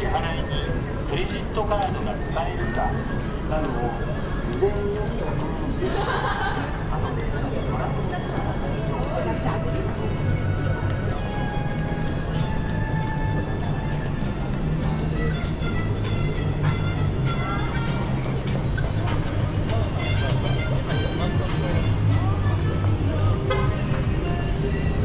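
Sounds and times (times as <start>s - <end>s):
low rumble of traffic: 0.0s - 25.0s
music playing: 0.0s - 25.0s
voices of people passing: 0.0s - 25.0s.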